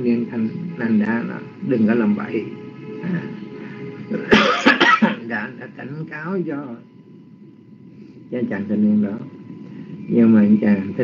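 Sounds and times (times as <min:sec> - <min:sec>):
person coughing: 0:04.1 - 0:05.2.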